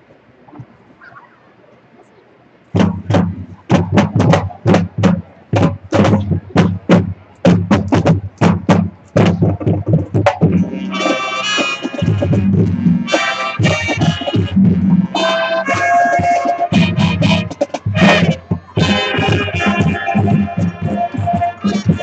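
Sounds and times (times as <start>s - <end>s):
drumline strokes: 2.7s - 22.0s
brass and woodwind chords: 10.5s - 22.0s.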